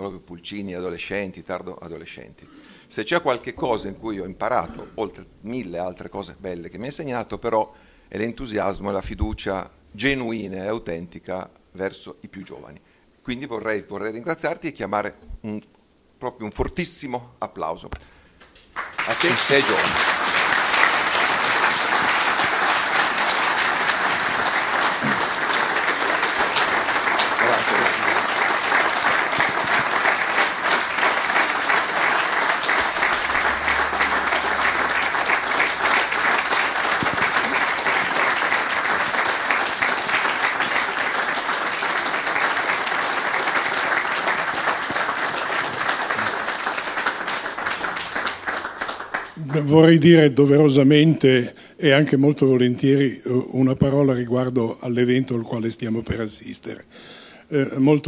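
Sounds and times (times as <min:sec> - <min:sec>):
audience applause: 0:18.4 - 0:49.8.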